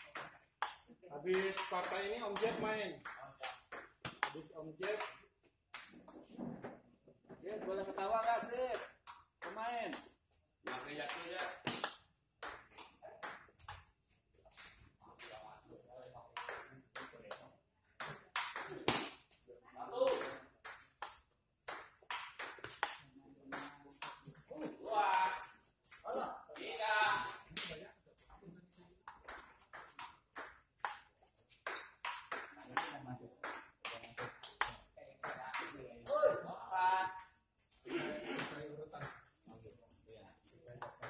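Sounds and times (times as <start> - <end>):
table tennis ball hits: 0.0 - 6.1, 8.0 - 13.9, 16.4 - 17.4, 18.0 - 19.3, 20.0 - 27.8, 29.0 - 36.4, 40.8 - 41.0.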